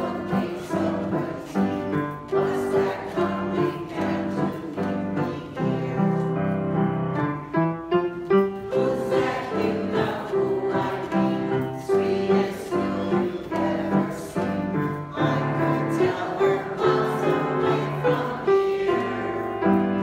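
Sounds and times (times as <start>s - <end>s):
choir singing: 0.0s - 6.9s, 8.5s - 20.0s
grand piano: 0.0s - 20.0s.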